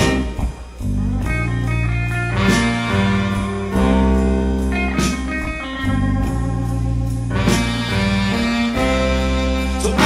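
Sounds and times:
blues band playing live: 0.0 - 10.0
electric guitar: 0.0 - 10.0.

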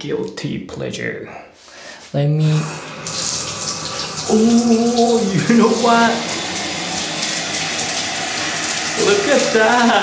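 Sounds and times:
water falling into bathtub: 3.0 - 10.0.

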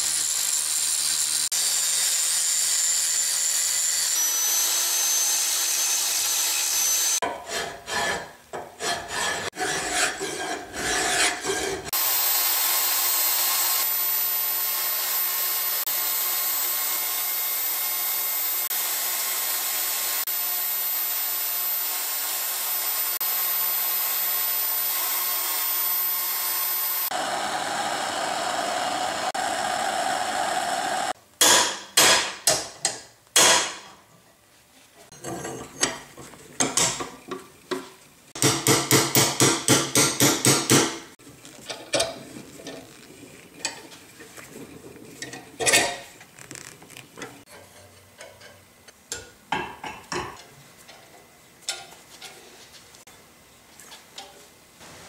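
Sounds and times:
angle grinder whining: 0.0 - 7.2, 10.9 - 31.2
power saw cutting steel tube: 0.0 - 31.2
hand-tool strokes: 4.0 - 12.0
hacksaw strokes: 4.7 - 12.0.

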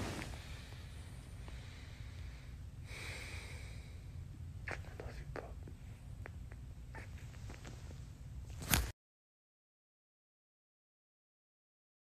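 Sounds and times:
soft breathy sound: 0.0 - 6.3
low steady rumble: 0.0 - 8.6.

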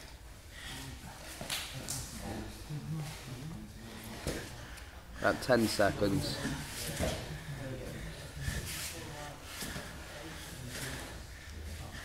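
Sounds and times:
laboured breathing and grunts: 0.4 - 12.0.

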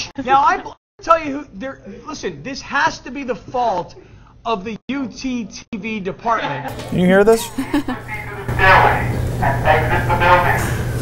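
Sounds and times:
person speaking: 6.7 - 10.6.

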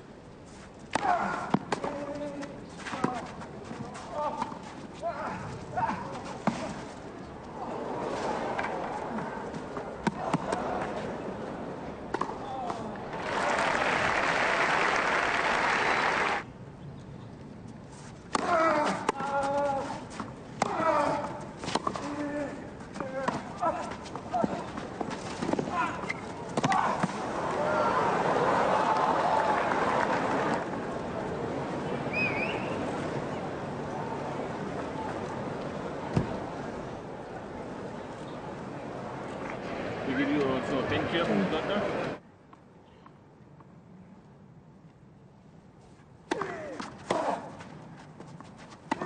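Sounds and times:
racket striking tennis ball: 12.1 - 12.4, 46.3 - 47.7
crowd applause: 13.1 - 16.4, 27.2 - 31.1.

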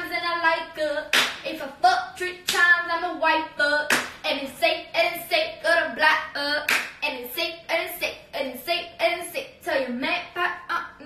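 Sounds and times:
sharp claps: 1.1 - 1.4, 2.5 - 2.7, 3.9 - 4.2, 6.7 - 7.0.

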